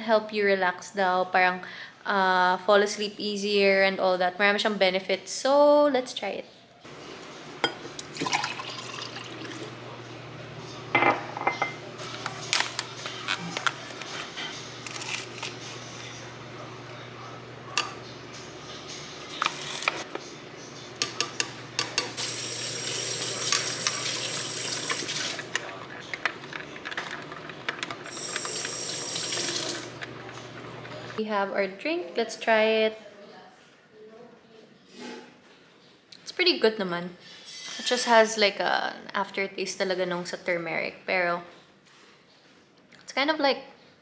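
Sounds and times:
liquid pouring into glass: 7.6s - 9.7s.

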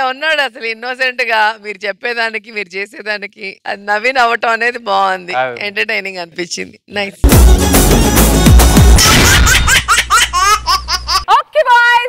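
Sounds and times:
sped-up cartoon laugh effect: 9.0s - 11.3s.

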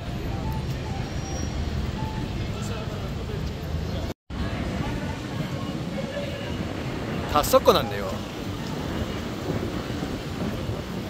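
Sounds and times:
busy pedestrian street noise: 0.0s - 11.0s
wind buffeting microphone: 4.3s - 11.0s.

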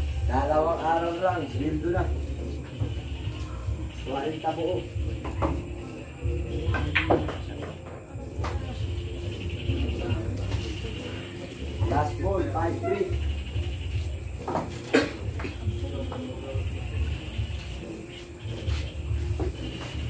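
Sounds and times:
chatter of onlookers: 0.0s - 20.0s.

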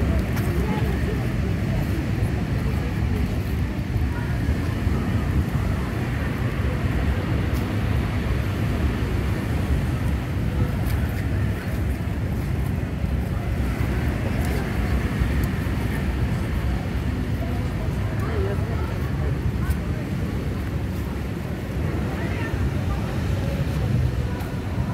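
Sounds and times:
low street rumble: 0.0s - 24.9s
noise haze: 0.0s - 24.9s.

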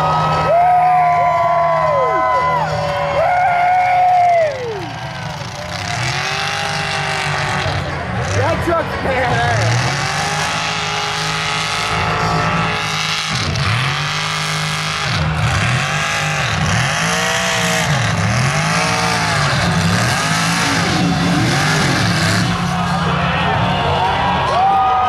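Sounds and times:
truck engine revving hard: 0.0s - 24.6s.

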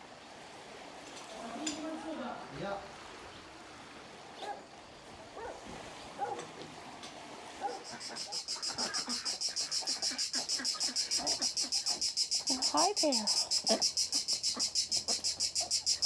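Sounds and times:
rhythmic pulsing insect chirping: 7.7s - 16.0s.

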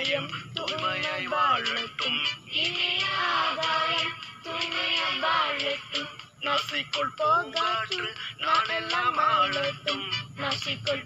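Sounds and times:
backing music: 0.0s - 11.0s
person singing: 0.0s - 11.0s.

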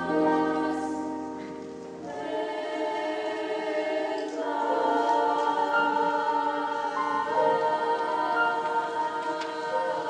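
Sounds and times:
girls choir singing chords: 0.0s - 10.0s.

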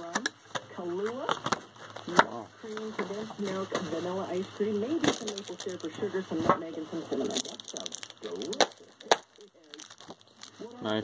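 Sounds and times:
plastic packaging snap: 5.0s - 5.9s, 7.2s - 10.6s.

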